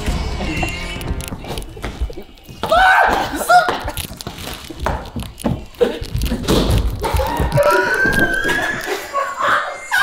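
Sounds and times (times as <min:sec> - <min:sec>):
thumps of people scuffling: 0:01.1 - 0:09.6
high-pitched shriek: 0:07.2 - 0:10.0.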